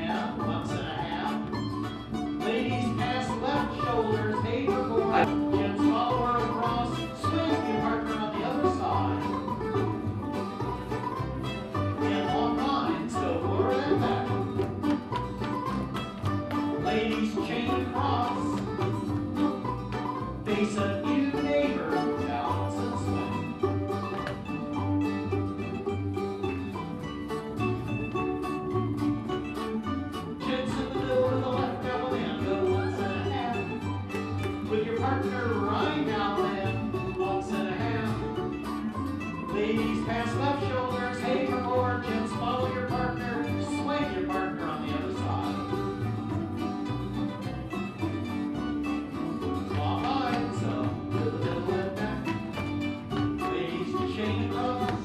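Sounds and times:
string band playing dance tune: 0.0 - 55.0
upright bass beat: 0.0 - 55.0.

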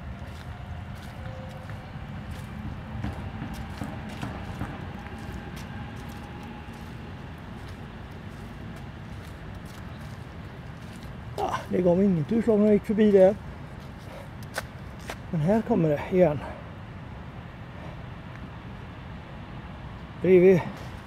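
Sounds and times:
footsteps on dry leaves: 0.0 - 11.2
steady low rumble: 0.0 - 15.6.

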